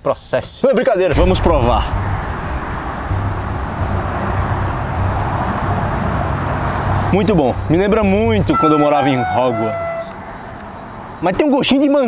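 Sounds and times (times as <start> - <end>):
low rumble: 1.1 - 8.6
road traffic noise: 1.1 - 12.0.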